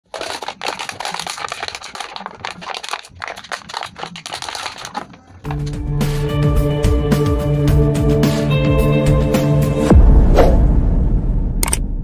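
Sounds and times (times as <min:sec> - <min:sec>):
plastic jar crackling when crushed: 0:00.0 - 0:05.8.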